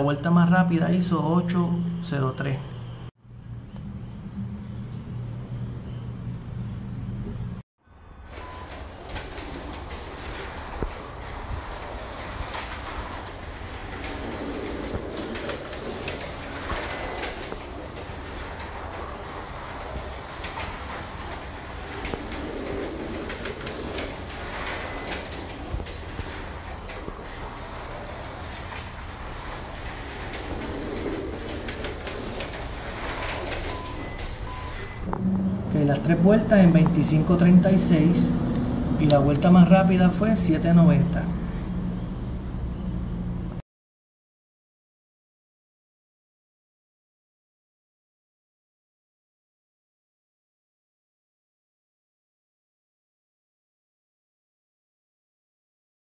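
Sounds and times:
low hum: 0:02.8 - 0:43.6
slot car motor whine: 0:02.9 - 0:43.6.

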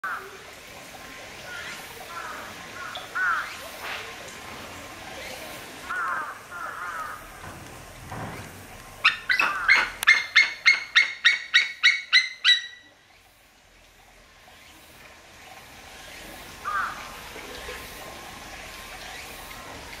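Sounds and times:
eagle calling: 0:09.0 - 0:12.9.

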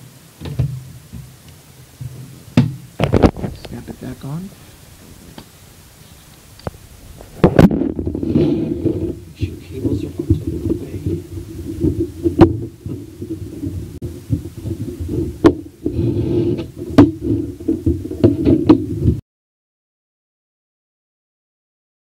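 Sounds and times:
muffled rubbing and knocking: 0:02.0 - 0:19.2.

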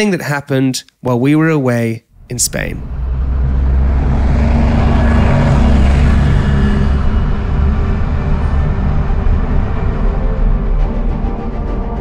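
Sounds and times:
loud low rumble: 0:02.1 - 0:12.0.

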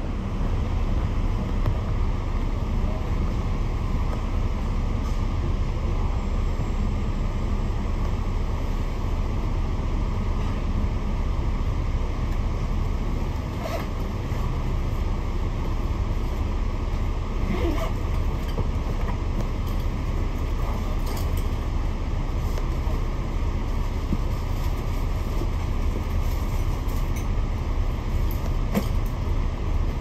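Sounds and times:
bus engine rumbling: 0:00.0 - 0:30.0.

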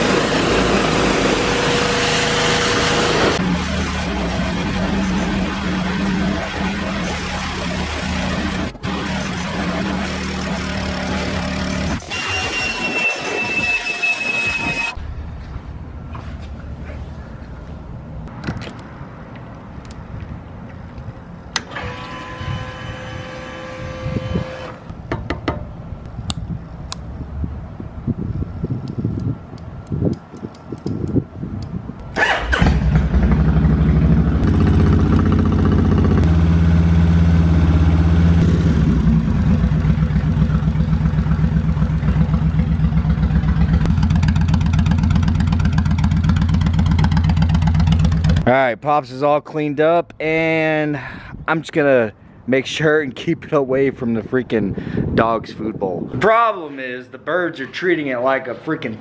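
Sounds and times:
motorcycle engine starting: 0:00.0 - 0:12.6, 0:32.1 - 0:48.5
motorcycle engine idling: 0:39.0 - 0:48.4.

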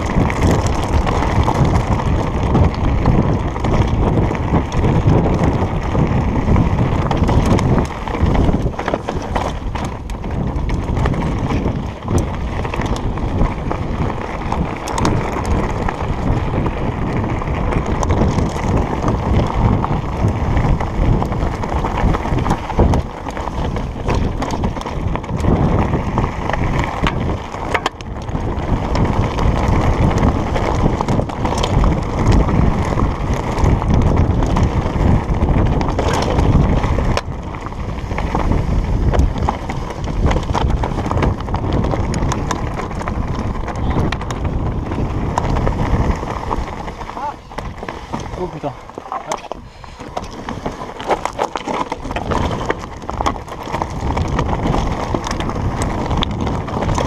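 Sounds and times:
bike tyres over loose stones: 0:00.0 - 0:57.0
wind noise on microphone: 0:00.0 - 0:57.0.

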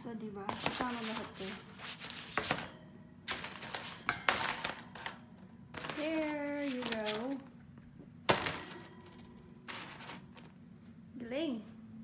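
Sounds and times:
metal shelf unit rattling: 0:00.6 - 0:05.2, 0:08.3 - 0:10.6.

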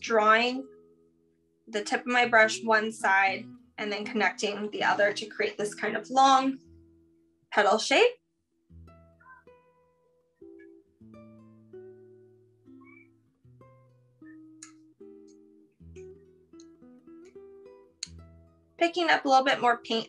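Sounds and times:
plucked guitar-like melody: 0:08.7 - 0:20.0.

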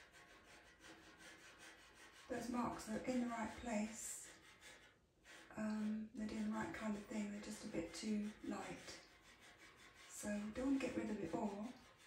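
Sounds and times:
pastel pencil rubbing on paper: 0:00.0 - 0:12.0.

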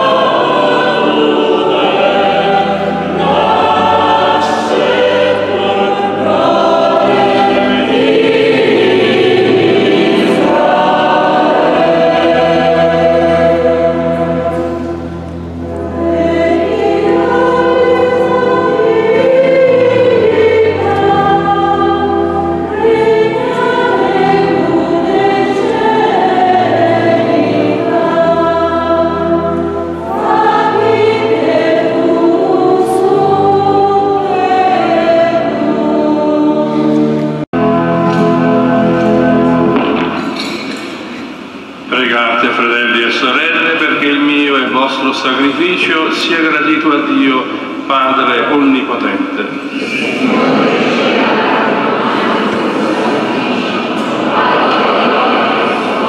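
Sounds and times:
choir singing a hymn: 0:00.0 - 0:56.0.

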